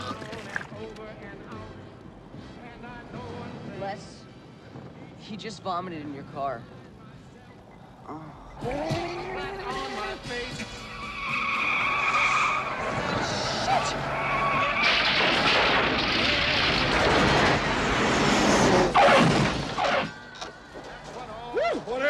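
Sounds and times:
car tyres squealing: 8.6 - 20.7.

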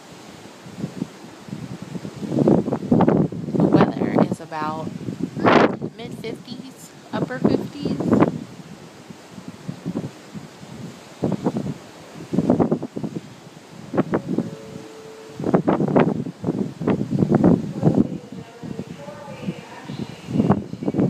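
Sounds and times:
wind buffeting microphone: 0.0 - 21.0
faint steady tone: 13.6 - 16.3.

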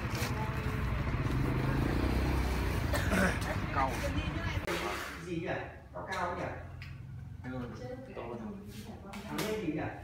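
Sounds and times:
vehicle engine droning: 0.0 - 4.7.

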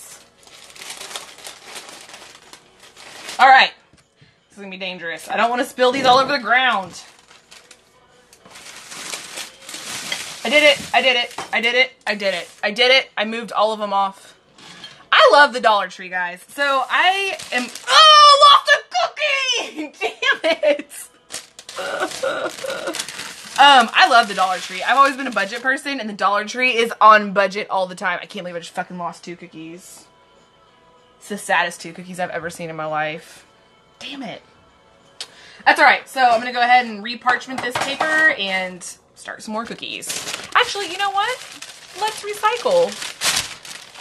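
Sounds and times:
parchment paper crinkling: 0.1 - 3.5, 6.9 - 11.5, 12.1 - 12.8, 16.8 - 18.3, 21.3 - 25.8, 39.7 - 44.0
woman laughing: 19.6 - 21.1, 21.8 - 23.0.

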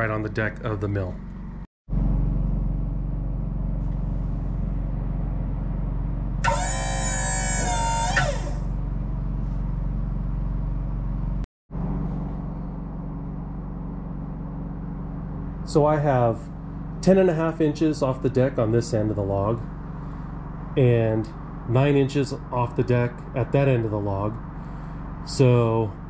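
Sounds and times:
sawmill humming: 2.3 - 9.4
high-pitched hydraulic whine: 6.4 - 8.9, 11.8 - 26.0.

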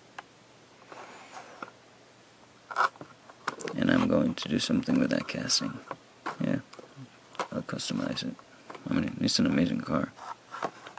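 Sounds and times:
packaging clicks and rustling: 6.3 - 7.6.

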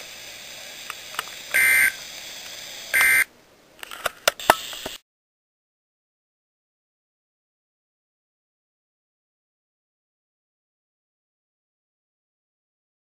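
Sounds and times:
low hiss: 0.0 - 5.0
short data-burst beeps: 1.5 - 2.0, 2.9 - 3.3.

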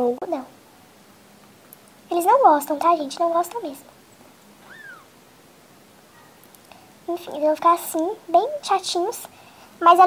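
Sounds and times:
kitten mewing: 4.6 - 5.2.

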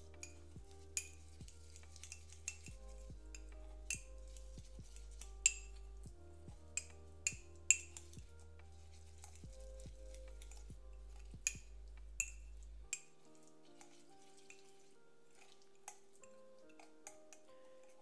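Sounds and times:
quiet background music: 0.0 - 18.0
spoon clinking in ceramic mug: 1.0 - 4.4.

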